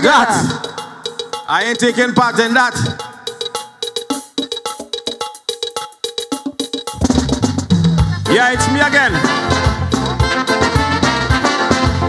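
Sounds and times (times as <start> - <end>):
calypso band playing: 0.0 - 12.0.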